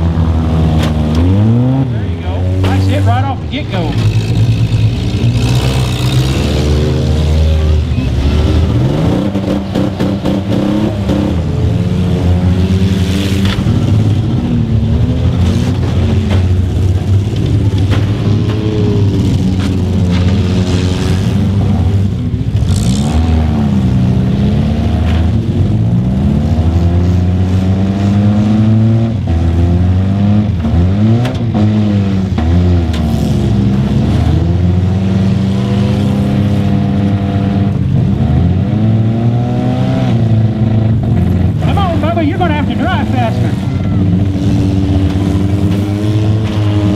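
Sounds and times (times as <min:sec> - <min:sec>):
car engines revving: 0:00.0 - 0:46.9.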